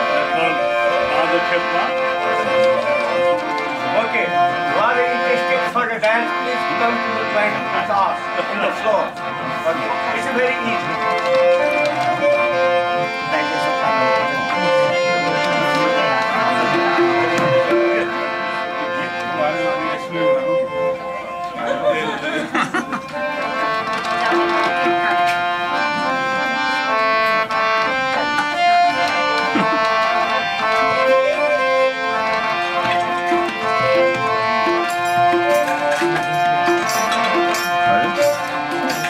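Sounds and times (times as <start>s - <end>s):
harmonium playing melody: 0.0s - 39.0s
plucked strings: 0.0s - 39.0s
hand-played drums: 10.2s - 18.3s, 22.5s - 26.2s, 27.8s - 39.0s.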